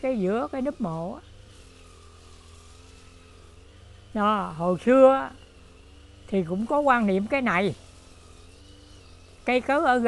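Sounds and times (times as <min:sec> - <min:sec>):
distant engine hum: 0:00.0 - 0:10.0
outdoor background noise: 0:00.0 - 0:10.0.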